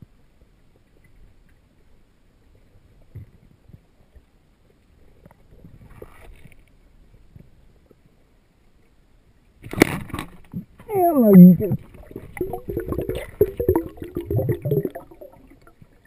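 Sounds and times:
muffled underwater rumble: 0:10.1 - 0:16.0.

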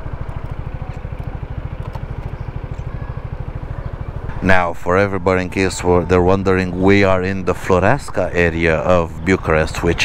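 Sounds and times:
scooter engine idling: 0:00.0 - 0:10.0.

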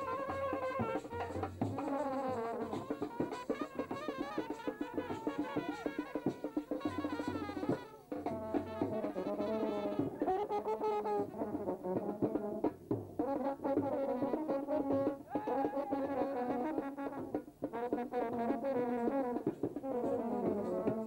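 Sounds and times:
brass band playing: 0:00.0 - 0:21.0
drum beats: 0:00.0 - 0:21.0.

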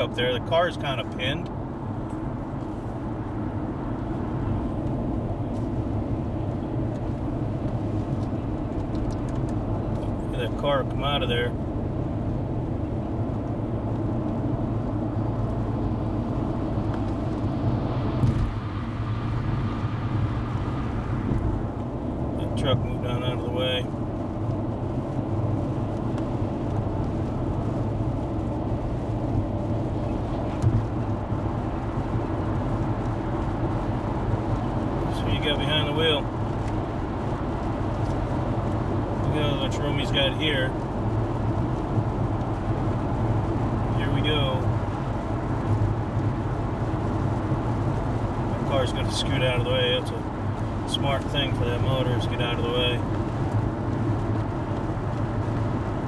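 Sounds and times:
engine and tyre rumble: 0:00.0 - 0:56.0.

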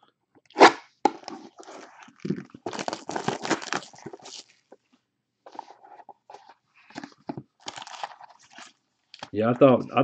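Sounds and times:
plastic wrap crinkling: 0:01.4 - 0:04.7, 0:06.3 - 0:09.3.

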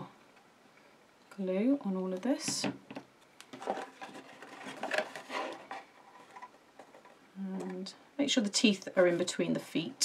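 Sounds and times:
paper card rustling: 0:03.5 - 0:07.1.

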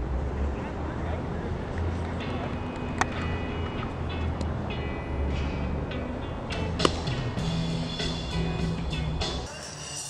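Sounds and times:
baseball bat crack: 0:06.6 - 0:08.3.

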